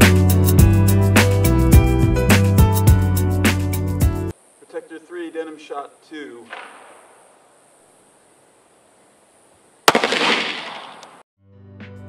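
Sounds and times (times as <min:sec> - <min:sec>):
pistol shot with echo: 0:06.4 - 0:07.2, 0:09.8 - 0:11.2.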